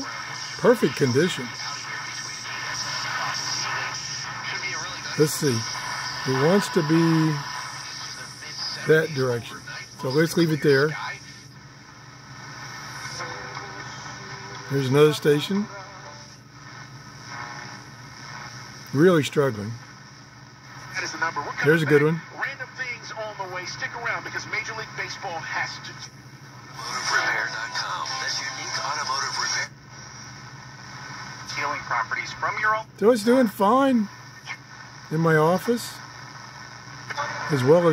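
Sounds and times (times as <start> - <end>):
faint radio voice: 0.0 - 11.4, 26.8 - 29.8, 31.4 - 32.9
radio hiss and static: 0.0 - 37.9.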